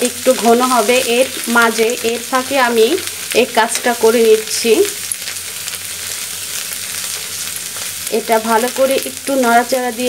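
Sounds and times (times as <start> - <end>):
vegetable sizzling in a pan: 0.0 - 10.0.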